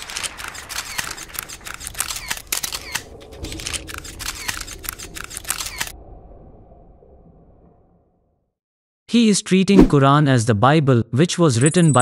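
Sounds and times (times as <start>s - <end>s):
camera shutters clicking rapidly: 0.0s - 5.9s.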